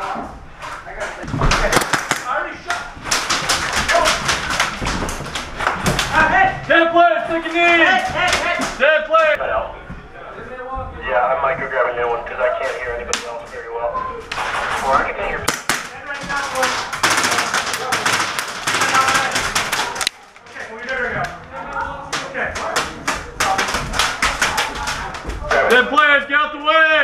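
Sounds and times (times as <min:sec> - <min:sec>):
airsoft guns firing: 0:01.6 - 0:02.4, 0:15.4 - 0:20.1.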